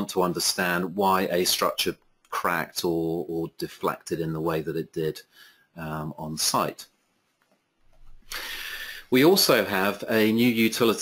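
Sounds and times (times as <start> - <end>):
person talking: 0.0 - 6.9, 9.0 - 11.0
breath drawn in: 8.1 - 9.2.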